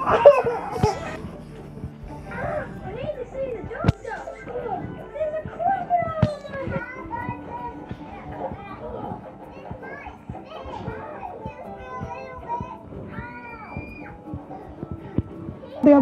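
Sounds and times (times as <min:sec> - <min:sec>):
background music: 0:00.0 - 0:16.0
children chattering and squealing: 0:00.0 - 0:16.0.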